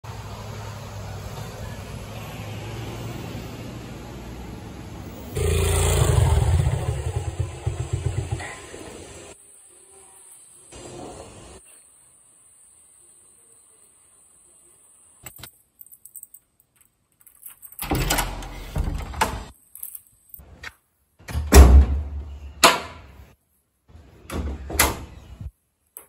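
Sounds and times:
low street hum: 0.0 - 15.8
motorcycle engine running: 5.4 - 9.2.

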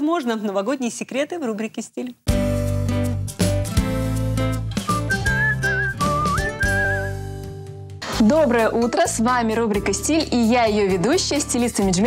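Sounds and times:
whistled tune: 4.8 - 7.3.

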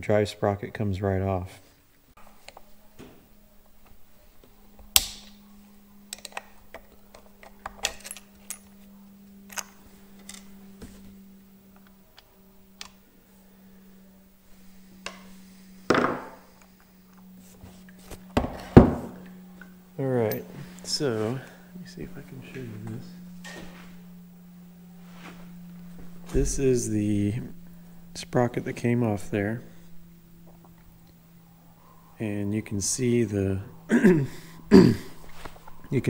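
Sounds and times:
steady low hum: 0.0 - 36.0
small metal parts clinking: 6.1 - 8.8
louder knocks on workbench: 15.9 - 16.4, 18.4 - 19.1.

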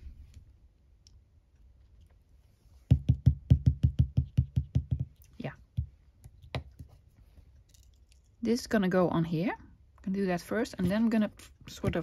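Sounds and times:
stamp block knocking on paper: 2.9 - 6.7.

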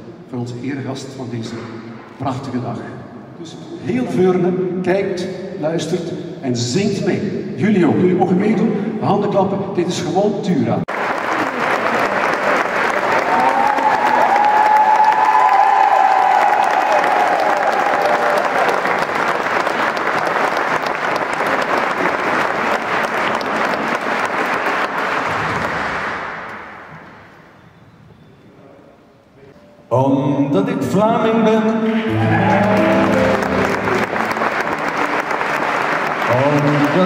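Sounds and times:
audience applauding: 10.9 - 27.0, 31.8 - 37.0.

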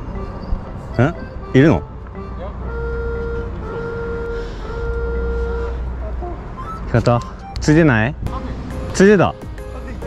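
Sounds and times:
vehicle engine rumbling: 0.0 - 10.0.

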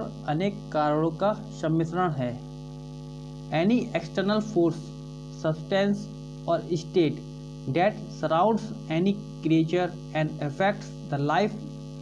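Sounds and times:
man speaking: 0.0 - 2.4, 3.5 - 11.7
electrical mains hum: 0.0 - 12.0.

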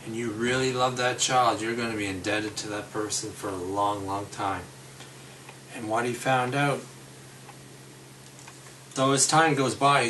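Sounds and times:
low room noise: 0.0 - 10.0
faint regular ticking: 5.0 - 5.7, 7.4 - 9.1.

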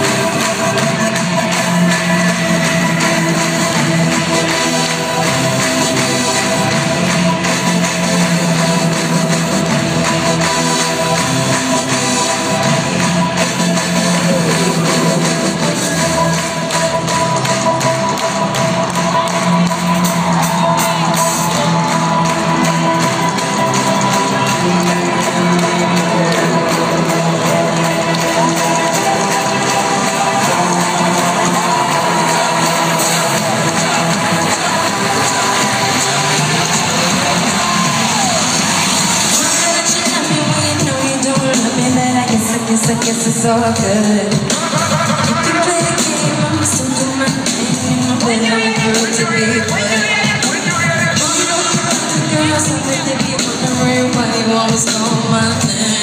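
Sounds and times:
loud amplified concert music: 0.0 - 56.0.

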